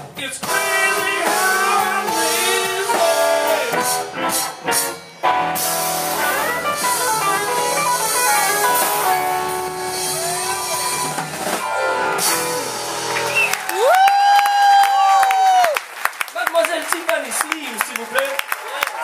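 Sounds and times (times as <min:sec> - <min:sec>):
live rock band playing: 0:00.0 - 0:14.9.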